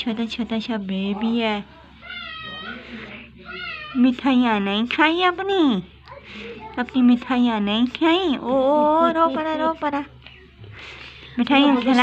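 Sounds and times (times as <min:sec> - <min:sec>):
newborn baby crying: 0:02.0 - 0:04.2.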